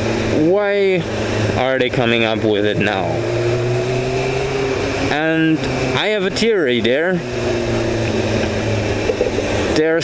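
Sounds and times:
motorcycle engine running: 0:00.0 - 0:10.0
wind and road noise: 0:00.0 - 0:10.0.

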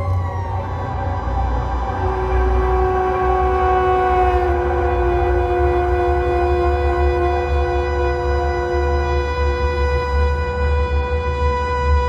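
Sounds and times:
low rumble: 0:00.0 - 0:12.0
slow ensemble music held chord: 0:00.0 - 0:12.0.

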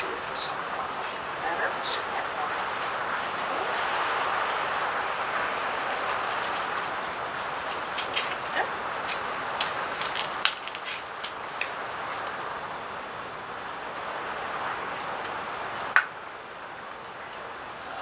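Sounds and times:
steady background hiss: 0:00.0 - 0:18.0.

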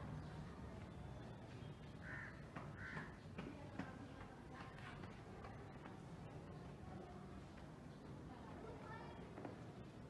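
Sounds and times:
crow cawing: 0:02.0 - 0:03.1.

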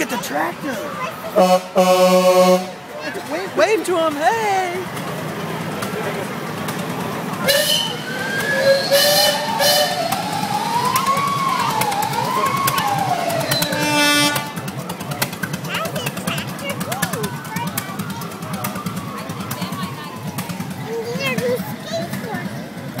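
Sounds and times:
diesel truck engine rumble: 0:00.0 - 0:23.0
truck air horn blasts: 0:01.3 - 0:02.9, 0:07.4 - 0:10.2, 0:13.5 - 0:14.7.

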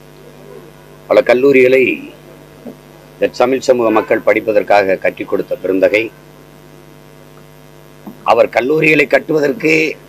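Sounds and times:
electrical mains hum: 0:00.0 - 0:10.0
man speaking: 0:00.4 - 0:02.3, 0:03.2 - 0:06.2, 0:08.2 - 0:10.0.

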